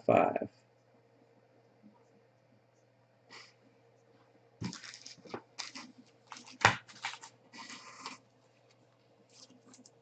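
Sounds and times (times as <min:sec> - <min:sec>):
cards rustling and clicking: 0:04.6 - 0:10.0
cards thumping on tabletop: 0:06.4 - 0:07.3.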